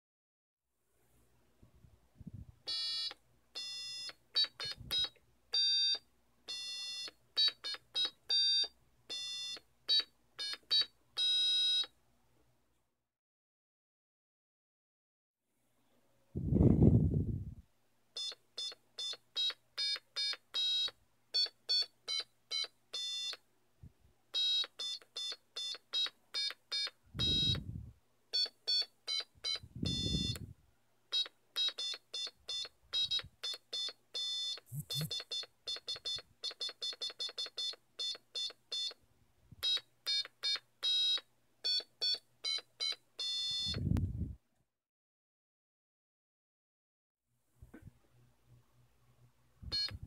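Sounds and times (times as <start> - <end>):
dull low thumps: 16.4 - 17.6
buzzy electronic beeps melody: 29.9 - 30.4, 34.7 - 36.2.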